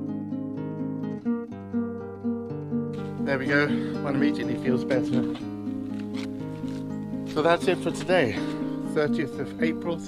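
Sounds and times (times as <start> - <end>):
acoustic guitar plucked and strummed: 0.0 - 10.0.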